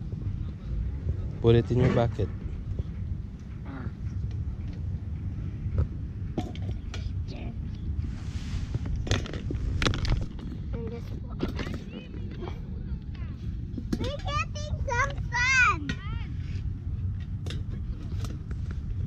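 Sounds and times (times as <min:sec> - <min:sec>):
low rumble: 0:00.0 - 0:19.0.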